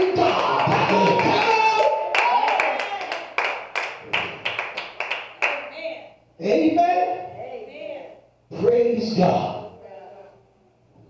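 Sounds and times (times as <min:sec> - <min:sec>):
man's amplified voice: 0:00.0 - 0:02.0, 0:06.4 - 0:07.3, 0:08.5 - 0:09.7
rhythmic clapping: 0:00.0 - 0:05.8.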